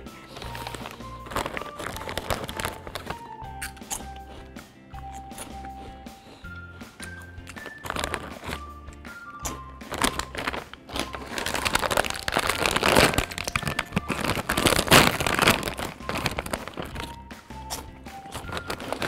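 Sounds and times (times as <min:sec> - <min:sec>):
background music with bass line: 0:00.0 - 0:19.0
plastic snack bag crinkling: 0:00.2 - 0:04.1, 0:07.0 - 0:19.0.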